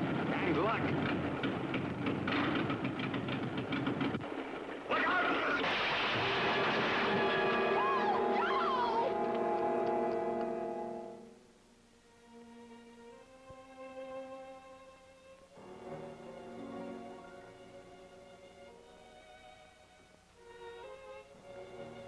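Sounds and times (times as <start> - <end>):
small plane engine running unevenly: 0.0 - 4.2
loud crash: 4.2 - 9.1
dramatic orchestral chord: 7.1 - 11.5.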